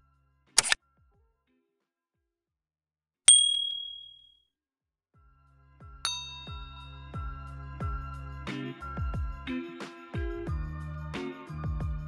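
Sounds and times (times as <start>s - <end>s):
bright ding: 3.3s - 4.2s, 6.1s - 7.1s.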